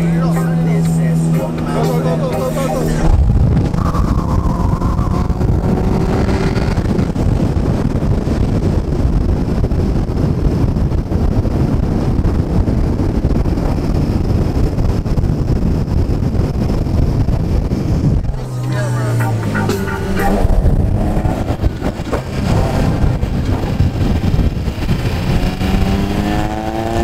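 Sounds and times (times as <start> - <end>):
car interior road drone: 0.0 - 27.0.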